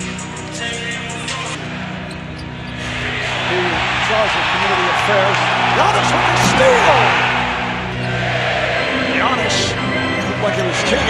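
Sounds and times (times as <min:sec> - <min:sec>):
background music: 0:00.0 - 0:11.0
arena crowd noise: 0:01.6 - 0:11.0
sneaker squeaks: 0:02.0 - 0:03.0.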